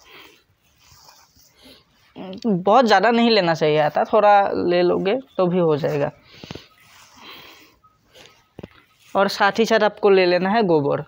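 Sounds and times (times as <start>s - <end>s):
hands kneading damp mix: 0.0s - 11.0s.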